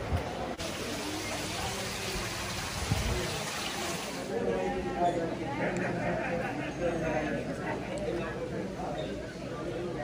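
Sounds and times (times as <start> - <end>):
water and pumps hissing: 0.6 - 4.3.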